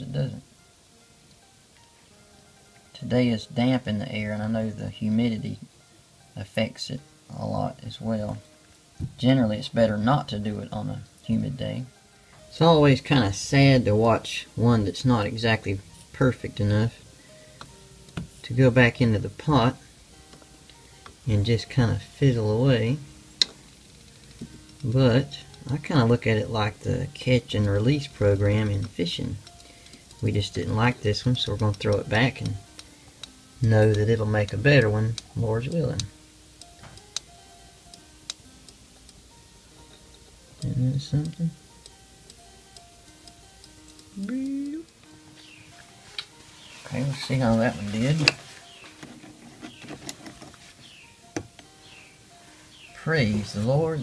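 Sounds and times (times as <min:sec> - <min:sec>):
faint background music: 0:00.0 - 0:54.0
faint steady hum: 0:00.0 - 0:54.0.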